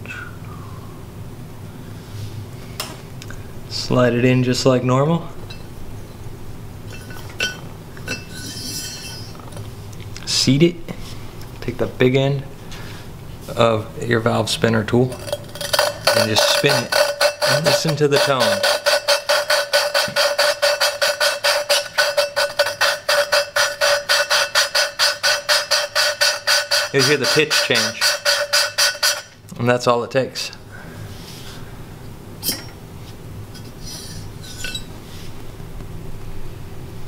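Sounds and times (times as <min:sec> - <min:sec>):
ringing metal scraping: 0:06.9 - 0:09.4, 0:15.0 - 0:29.4, 0:33.5 - 0:34.9
valve lapping grinding: 0:14.9 - 0:29.4
metallic clink: 0:34.4 - 0:34.9.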